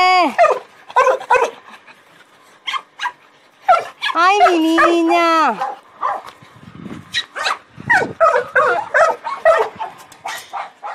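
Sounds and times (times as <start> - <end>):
dog yelping and whining: 0.4 - 6.2, 7.1 - 10.9.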